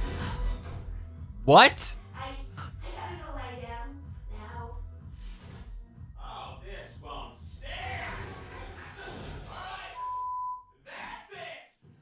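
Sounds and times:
person speaking: 1.5 - 2.0
censor bleep: 10.0 - 10.7.

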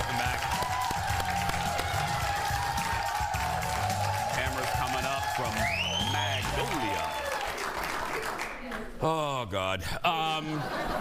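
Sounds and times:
show music: 0.0 - 7.4
audience applauding: 0.0 - 8.9.

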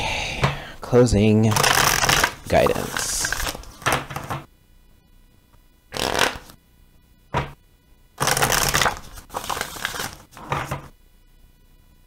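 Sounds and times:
cards being shuffled: 1.5 - 4.4, 5.9 - 6.6, 8.2 - 10.9.

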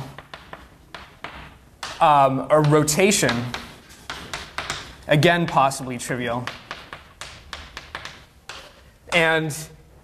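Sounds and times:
chalk tapping on a blackboard: 0.0 - 9.4.

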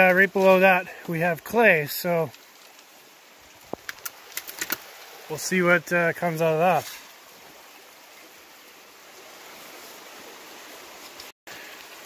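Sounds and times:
gravel clicking and scraping: 0.0 - 5.0.

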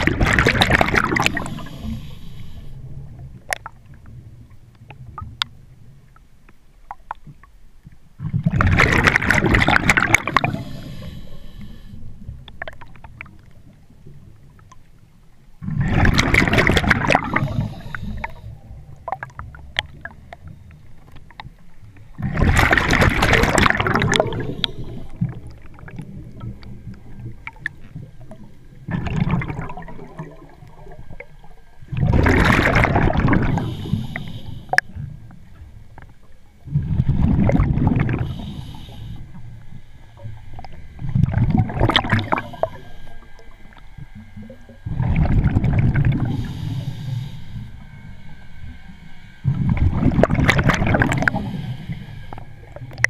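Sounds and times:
diver's regulator bubbling: 0.0 - 5.7, 8.2 - 11.4, 15.6 - 53.0.

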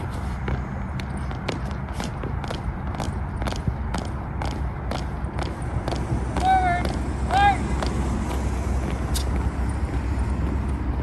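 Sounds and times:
steady low rumble: 0.0 - 11.0
person shouting drill commands: 6.4 - 7.8.

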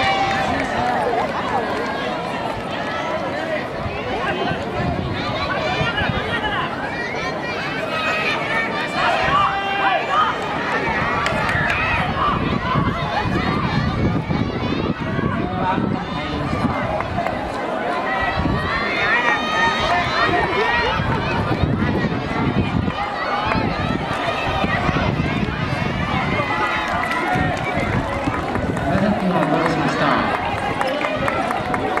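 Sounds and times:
crowd shouting and cheering: 0.0 - 32.0.

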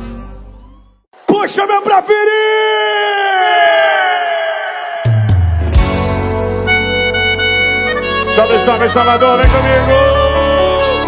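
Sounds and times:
singer's long held shout: 2.5 - 5.6.

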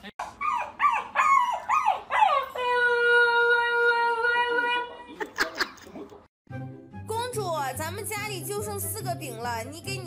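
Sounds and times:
puppy howling: 0.3 - 5.0.

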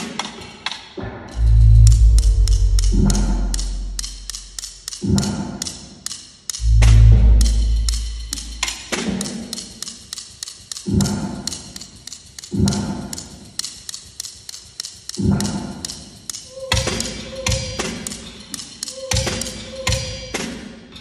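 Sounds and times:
deep drum thumps: 1.3 - 4.6, 6.6 - 8.7.

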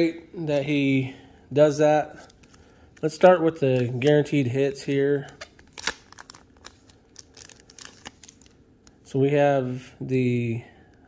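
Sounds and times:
plastic card sleeve crinkling: 2.1 - 9.0.

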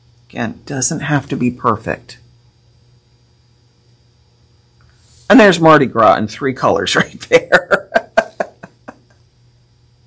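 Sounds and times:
woman laughing: 7.2 - 9.1.

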